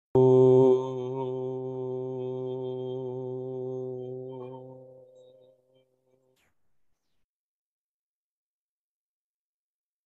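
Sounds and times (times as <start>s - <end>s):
person chanting om: 0.2s - 6.3s.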